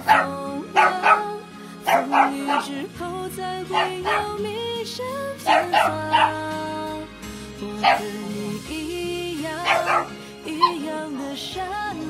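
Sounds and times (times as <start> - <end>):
puppies yipping and barking: 0.0 - 2.9, 3.7 - 4.4, 5.4 - 6.5, 7.8 - 8.3, 9.6 - 11.4
background music: 0.0 - 12.0.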